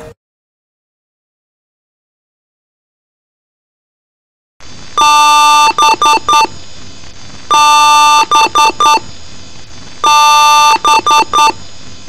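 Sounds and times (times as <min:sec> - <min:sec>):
harsh chord-like beeps: 0:05.0 - 0:06.6, 0:07.5 - 0:09.1, 0:10.0 - 0:11.6
steady hiss: 0:06.4 - 0:07.5, 0:09.0 - 0:10.1, 0:11.5 - 0:12.0.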